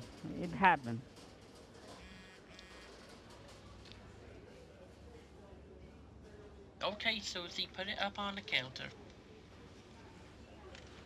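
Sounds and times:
faint electronic buzzing beeps: 2.0s - 2.9s.

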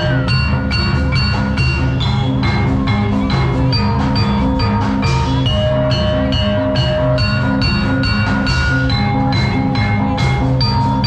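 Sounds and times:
ringing metallophone notes: 0.0s - 11.0s
steady drum pattern: 0.0s - 11.0s.

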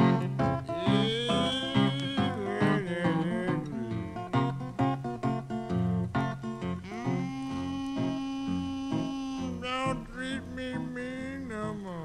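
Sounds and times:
acoustic guitar picking: 0.0s - 12.0s.

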